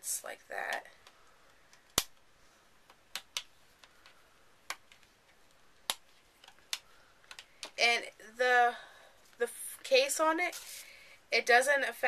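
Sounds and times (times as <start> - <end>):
plastic phone case clicking and snapping: 5.8 - 7.8.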